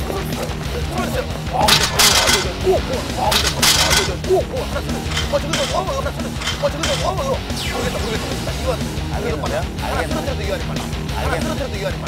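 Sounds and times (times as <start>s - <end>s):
excited wordless shouts: 0.0s - 1.7s, 4.1s - 12.0s
low music bed: 0.0s - 12.0s.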